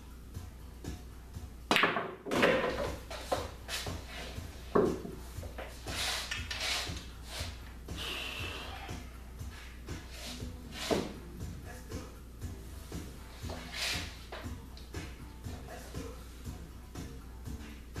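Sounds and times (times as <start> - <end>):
pool cue striking ball: 1.7 - 3.8, 4.7 - 5.7, 10.0 - 11.2.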